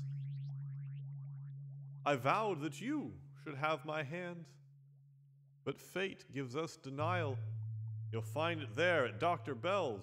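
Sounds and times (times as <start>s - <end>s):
steady low drone: 0.0s - 5.8s, 6.4s - 10.0s.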